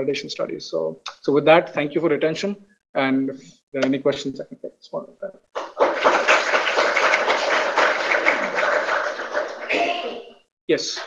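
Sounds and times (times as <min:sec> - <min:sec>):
audience applauding: 0:05.6 - 0:10.3.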